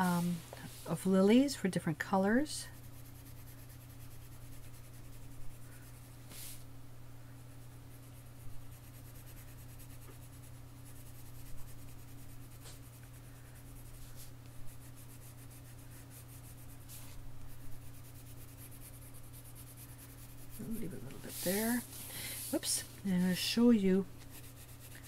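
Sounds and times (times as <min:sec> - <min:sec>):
steady low hum: 0:00.0 - 0:25.0
pencil scratching on paper: 0:02.2 - 0:06.6, 0:07.9 - 0:25.0.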